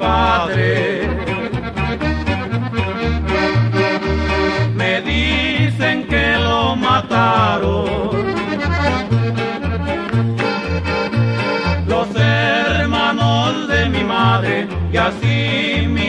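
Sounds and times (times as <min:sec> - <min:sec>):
bass notes: 0:00.0 - 0:16.0
button accordion melody: 0:00.0 - 0:16.0.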